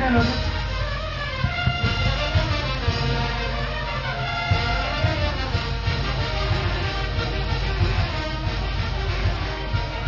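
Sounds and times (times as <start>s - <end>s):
brass band playing: 0.0s - 10.0s.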